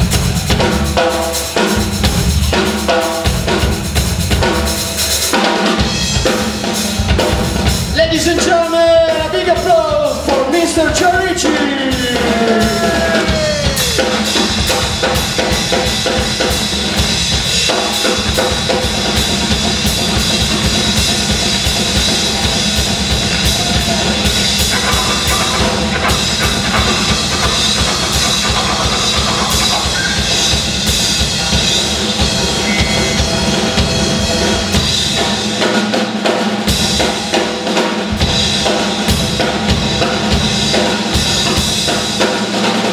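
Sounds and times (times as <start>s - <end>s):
blues band playing: 0.0s - 42.9s
drum kit played busily: 0.0s - 42.9s.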